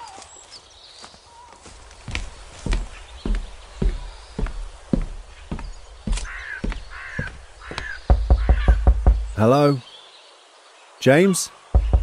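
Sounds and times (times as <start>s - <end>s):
footsteps walking: 0.9s - 9.2s
crow cawing: 6.1s - 9.0s
loud knocking on door: 7.2s - 9.4s, 11.8s - 12.0s.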